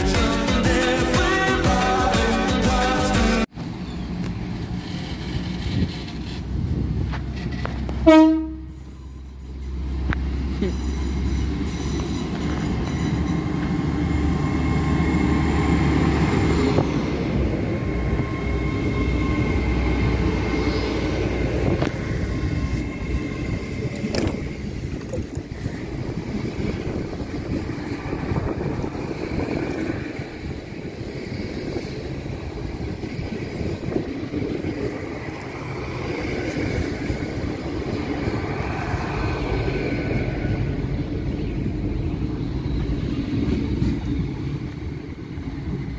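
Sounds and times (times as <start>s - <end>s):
train diesel engines whining: 0.0s - 45.9s
train wheel noise: 3.5s - 45.9s.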